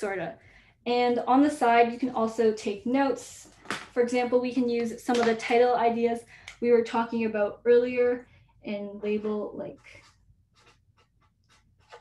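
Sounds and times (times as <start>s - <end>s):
pen scratching on paper: 9.2s - 12.0s.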